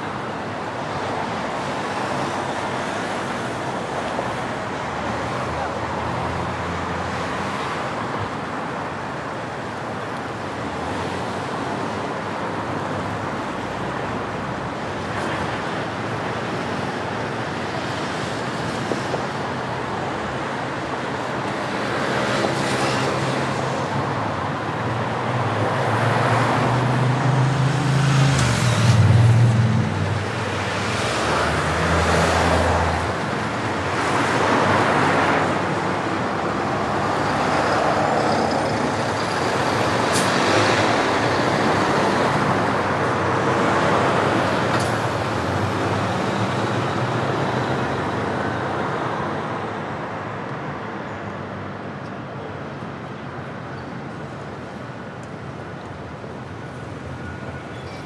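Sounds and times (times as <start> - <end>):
cars passing with tyre noise: 0.0 - 58.0.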